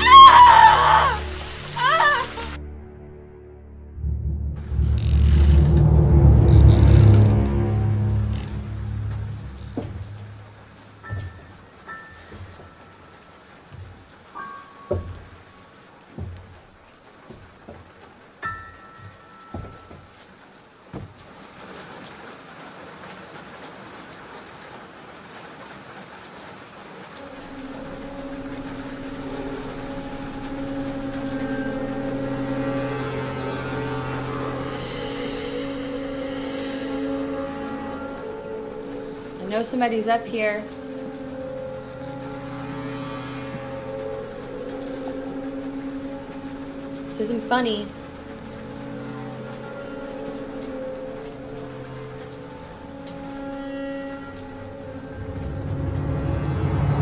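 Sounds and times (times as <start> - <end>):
suspense film score: 0.0 - 57.0.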